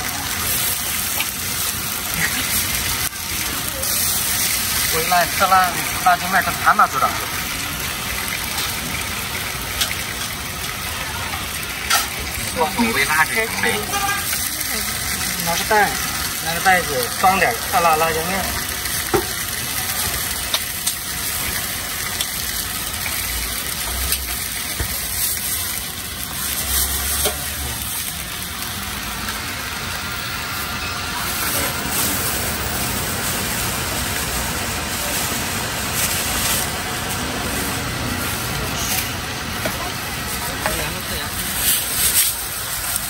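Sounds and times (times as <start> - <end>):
skewers sizzling on a griddle: 0.0 - 43.0
street noise with engine hum: 0.0 - 43.0.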